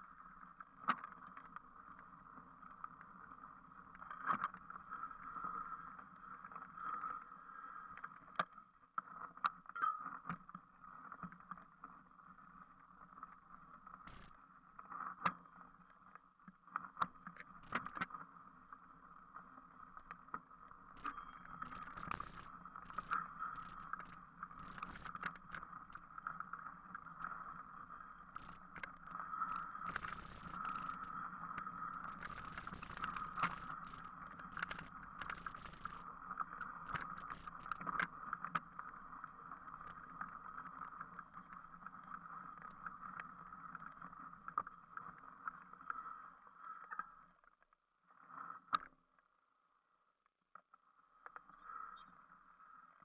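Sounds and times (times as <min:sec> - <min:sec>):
bike knocking and rattling: 0:14.1 - 0:14.3, 0:21.0 - 0:26.2, 0:28.2 - 0:38.0
bike tyres rolling on dirt: 0:14.1 - 0:14.3, 0:20.7 - 0:40.4.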